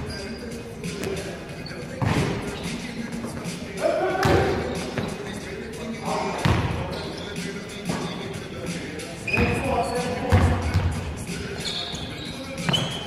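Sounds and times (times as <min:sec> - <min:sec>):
players calling out: 0:00.0 - 0:13.0.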